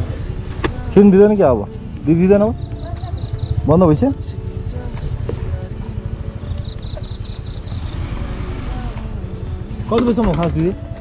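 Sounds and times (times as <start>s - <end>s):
high pulsing chirp: 0.0s - 9.2s
motorcycle engine rumbling: 0.0s - 11.0s.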